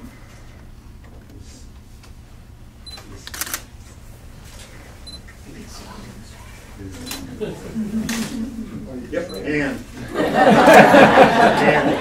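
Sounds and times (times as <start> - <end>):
low room hum: 0.0 - 12.0
camera focus beep: 2.9 - 3.6, 5.0 - 5.3
camera shutter clicks: 3.2 - 3.7.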